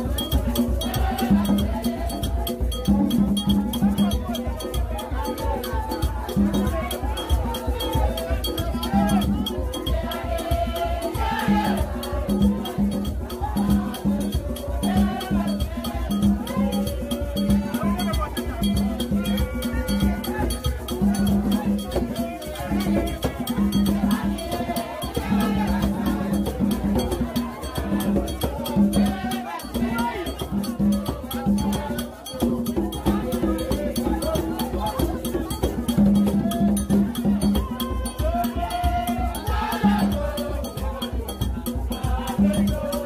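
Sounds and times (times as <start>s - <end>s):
crowd singing held notes: 0.0s - 43.0s
low percussion: 0.0s - 43.0s
metal bell struck rhythmically: 0.0s - 43.0s.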